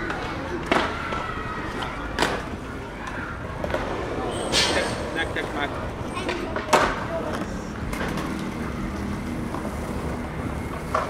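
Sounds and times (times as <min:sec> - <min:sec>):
city traffic: 0:00.0 - 0:11.0.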